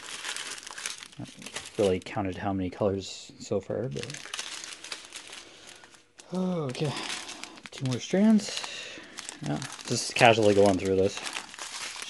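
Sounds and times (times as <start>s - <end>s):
plastic bags crinkling: 0.0s - 3.0s, 3.7s - 12.0s.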